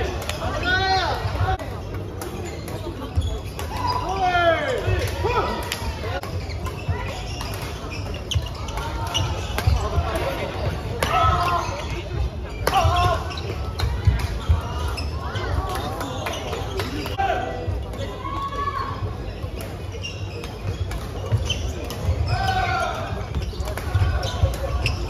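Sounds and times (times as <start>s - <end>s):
rackets hitting shuttlecock: 12.6s - 14.8s.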